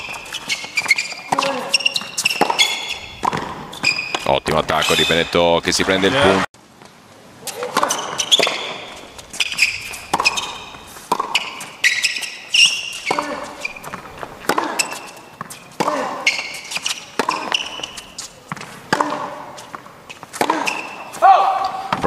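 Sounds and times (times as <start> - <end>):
tennis ball bouncing: 0.0 - 4.3, 7.5 - 22.0
racquet striking tennis ball: 0.0 - 5.2, 7.5 - 22.0
shoes squeaking on court: 0.0 - 6.4, 7.4 - 22.0.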